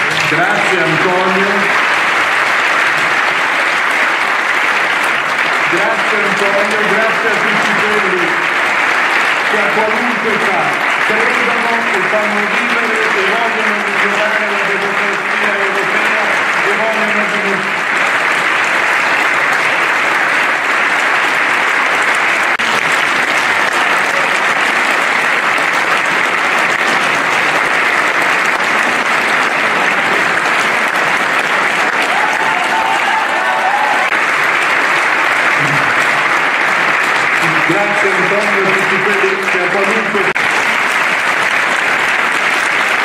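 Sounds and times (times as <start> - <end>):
large audience applauding: 0.0 - 43.0.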